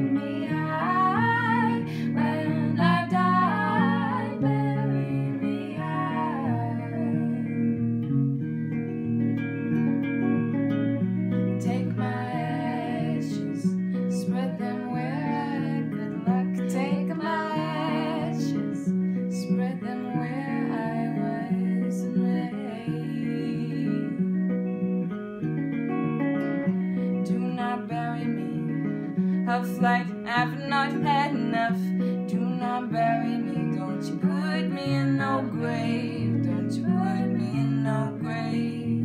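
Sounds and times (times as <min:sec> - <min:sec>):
woman singing: 0:00.0 - 0:07.9, 0:11.5 - 0:24.4, 0:27.1 - 0:39.0
acoustic and electric guitars: 0:00.0 - 0:39.0.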